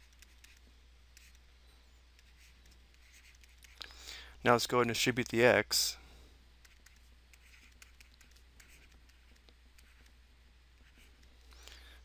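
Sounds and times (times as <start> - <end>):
stylus scratching on tablet: 0.0 - 1.4, 2.1 - 3.8, 6.6 - 10.2, 10.8 - 11.3
low steady hum: 0.0 - 12.0.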